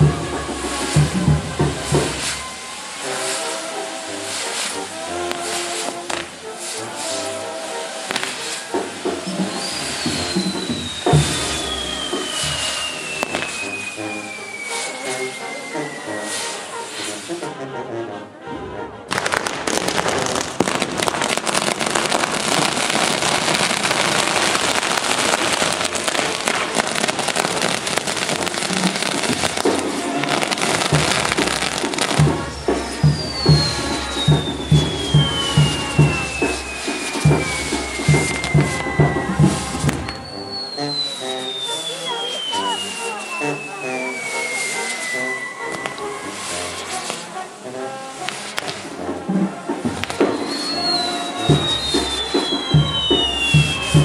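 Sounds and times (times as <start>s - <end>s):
music with falling whistle tone: 0.0s - 17.4s, 27.3s - 47.2s, 50.1s - 54.0s
fireworks crackling and hissing: 0.0s - 17.6s, 19.1s - 54.0s.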